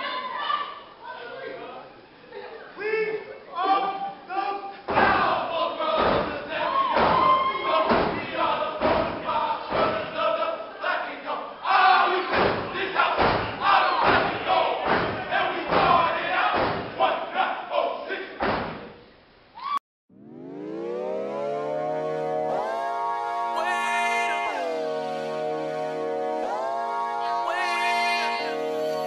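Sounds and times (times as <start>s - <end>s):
crowd yelling: 3.6s - 18.4s
people shouting in unison: 4.9s - 10.8s, 11.6s - 18.4s
stomping and clapping: 7.0s - 10.0s, 12.3s - 17.0s
recorded music with rising sweep: 20.1s - 29.0s.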